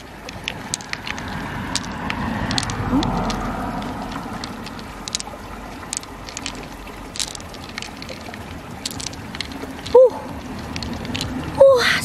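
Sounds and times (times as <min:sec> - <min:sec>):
pearls clicking together: 0:00.0 - 0:11.8.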